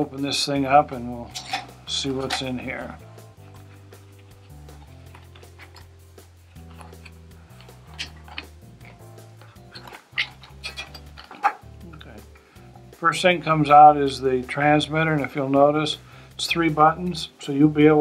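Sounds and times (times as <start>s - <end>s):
quiet background music: 0.0s - 18.0s.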